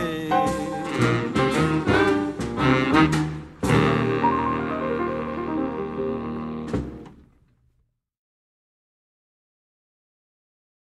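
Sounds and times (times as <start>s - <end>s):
jazz band closing chord: 0.0s - 7.4s.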